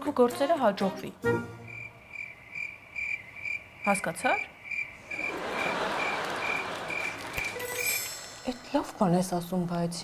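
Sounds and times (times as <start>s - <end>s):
cricket chirping: 1.5s - 8.2s.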